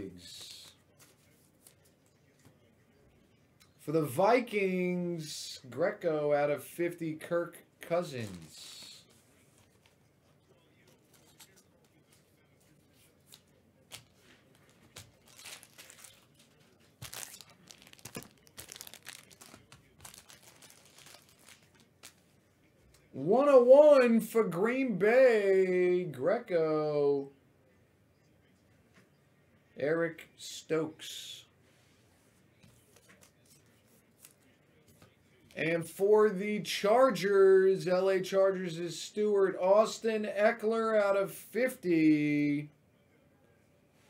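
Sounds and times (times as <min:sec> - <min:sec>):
packaging rustling and crinkling: 0:13.9 - 0:22.2.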